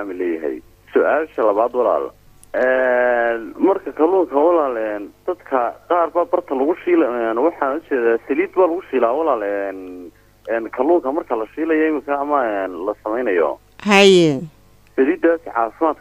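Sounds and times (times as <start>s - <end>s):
person talking on telephone-like line: 13.8s - 14.5s.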